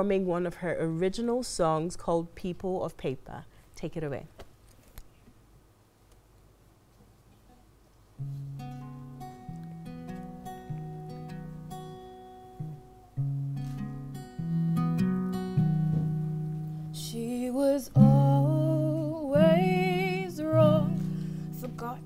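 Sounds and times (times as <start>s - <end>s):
acoustic guitar picking: 8.2s - 22.0s
woman singing: 16.9s - 22.0s.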